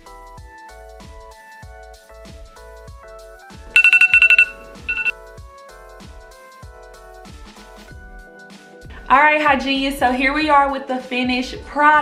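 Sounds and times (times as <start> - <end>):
background music with beat: 0.0 - 8.8
phone timer alarm beeps: 3.8 - 5.1.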